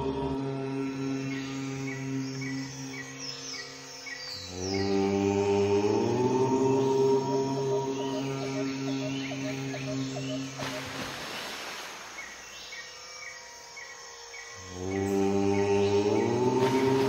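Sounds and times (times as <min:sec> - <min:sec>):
person chanting om: 0:00.0 - 0:10.6, 0:14.3 - 0:17.0.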